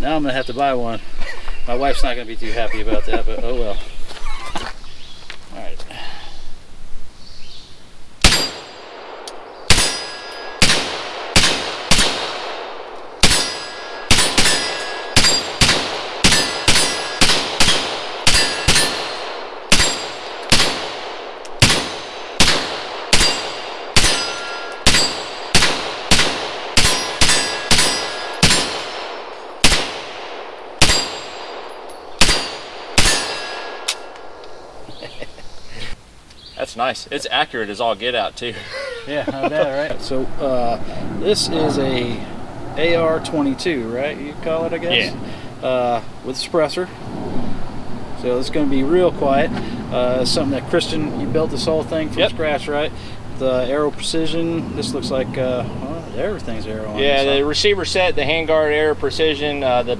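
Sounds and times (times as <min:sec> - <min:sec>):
steel target ringing: 0:08.2 - 0:20.8, 0:21.6 - 0:30.2, 0:30.8 - 0:34.2
suppressed rifle shots: 0:08.2 - 0:34.4.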